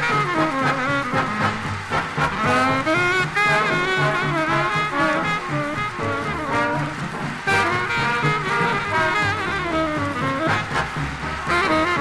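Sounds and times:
swing big band playing: 0.0s - 12.0s.

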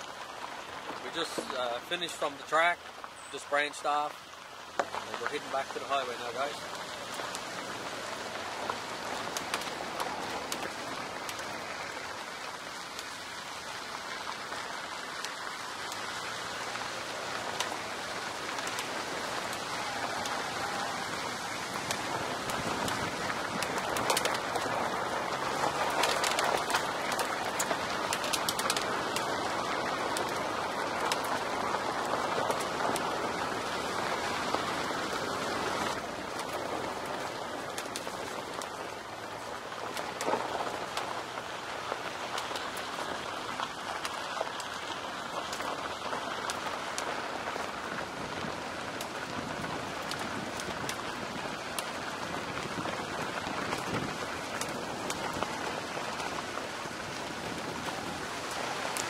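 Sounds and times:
tyres crunching on gravel: 0.0s - 59.0s.

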